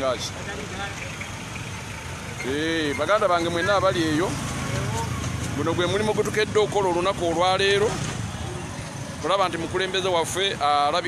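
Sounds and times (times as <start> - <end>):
motorcycles passing: 0.0 - 11.0
traffic engine rumble: 0.0 - 11.0.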